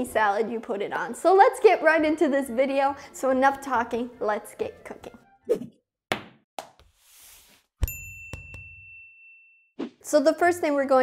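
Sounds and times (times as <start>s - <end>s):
high bell-like ding: 7.8s - 9.8s.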